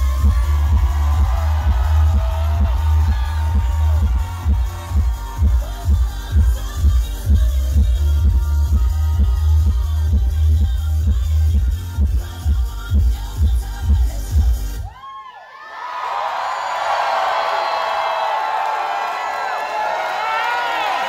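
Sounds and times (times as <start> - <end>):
crowd cheering and screaming: 0.0 - 6.9, 14.8 - 21.0
dance-pop music with heavy bass: 0.0 - 15.0.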